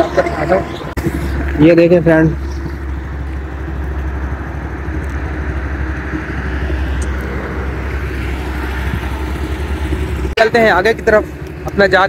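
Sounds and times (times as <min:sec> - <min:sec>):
motorcycle engine idling: 0:00.0 - 0:07.0.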